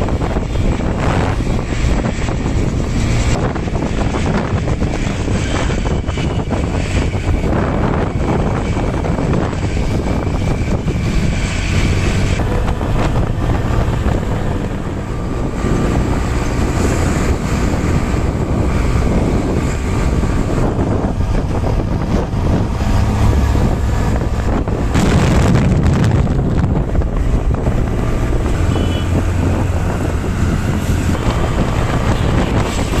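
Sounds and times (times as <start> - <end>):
road and traffic noise: 0.0 - 33.0
wind buffeting microphone: 0.0 - 33.0.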